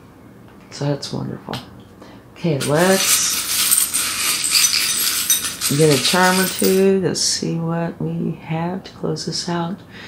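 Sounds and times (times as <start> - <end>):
metal charms clinking: 2.6 - 6.8.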